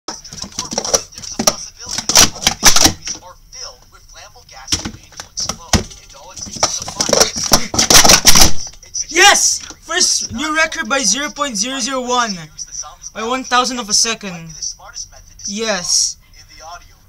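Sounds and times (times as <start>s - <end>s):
plastic cups clacking: 0.1s - 3.2s, 4.7s - 8.8s.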